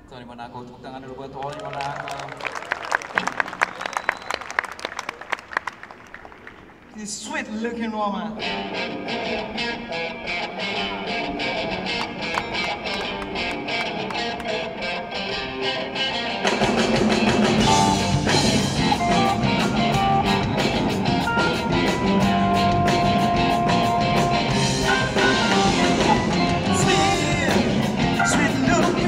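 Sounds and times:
electric guitar riff: 0:08.2 - 0:29.0
blues-rock band playing: 0:08.4 - 0:29.0.

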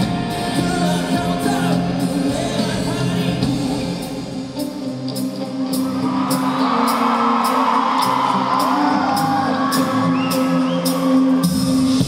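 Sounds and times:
crowd screaming and cheering: 0:00.0 - 0:12.0
live pop-rock band playing: 0:00.0 - 0:12.0.

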